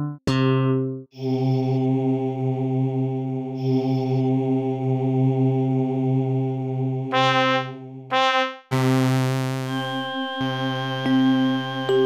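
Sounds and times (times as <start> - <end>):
plucked synth note: 7.1 - 9.7.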